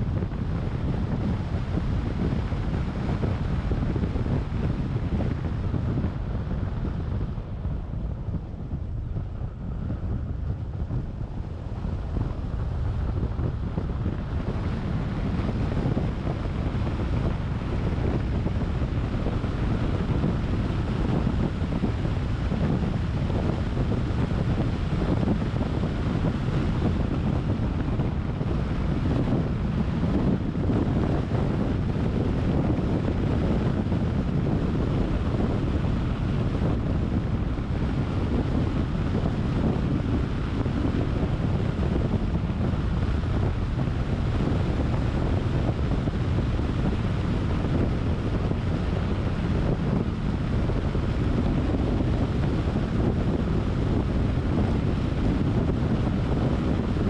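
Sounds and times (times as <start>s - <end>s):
road and tyre rumble: 0.0s - 57.0s
wind rushing over microphone: 0.0s - 57.0s.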